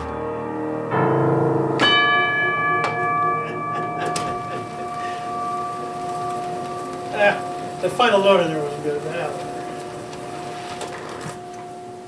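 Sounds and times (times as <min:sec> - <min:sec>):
player piano final chord: 0:00.0 - 0:10.5
bell ringing: 0:01.8 - 0:09.8.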